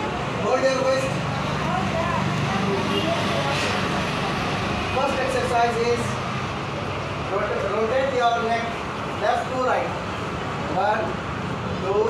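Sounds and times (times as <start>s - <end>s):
faint voices: 0.0s - 9.4s
street traffic rumble: 0.0s - 12.0s.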